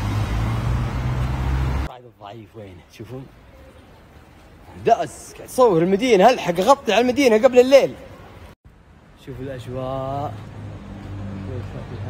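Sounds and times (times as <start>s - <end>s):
road traffic engine hum: 0.0s - 1.9s, 6.2s - 12.0s
tyre and road noise: 0.0s - 12.0s.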